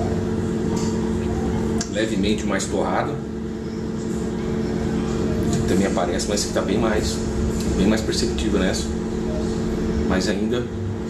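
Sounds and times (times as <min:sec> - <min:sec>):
appliance humming: 0:00.0 - 0:11.0.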